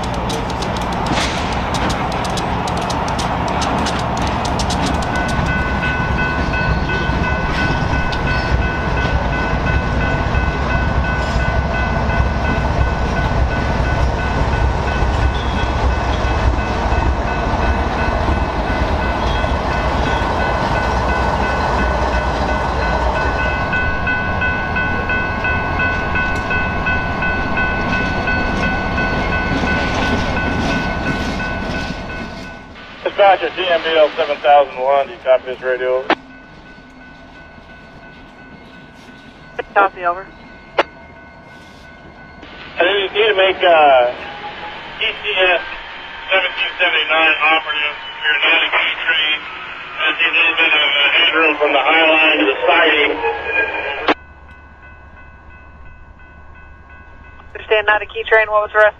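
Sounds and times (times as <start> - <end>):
wheels clicking over rail joints: 0.0 - 9.1
freight train rumbling past: 0.0 - 58.9.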